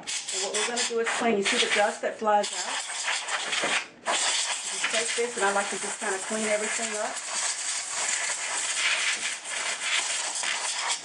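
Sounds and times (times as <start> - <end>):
compressed air hissing: 0.0 - 11.0.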